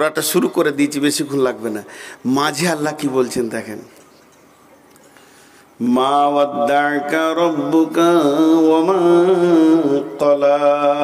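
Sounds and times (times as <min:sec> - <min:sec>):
man chanting through a microphone: 0:05.8 - 0:11.0.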